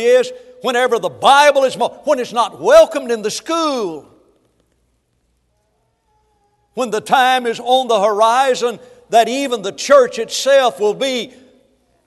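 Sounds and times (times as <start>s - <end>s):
echo of man's voice: 0.0s - 4.3s, 6.8s - 11.6s
faint room hum: 0.0s - 12.0s.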